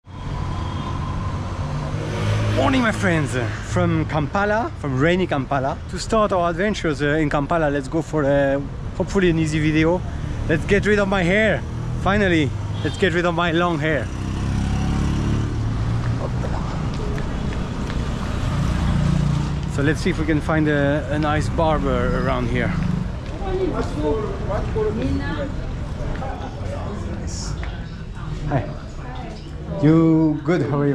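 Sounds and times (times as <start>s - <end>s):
road noise: 0.0s - 30.9s
street traffic: 0.0s - 30.9s
vehicle engine rumble: 6.8s - 28.6s.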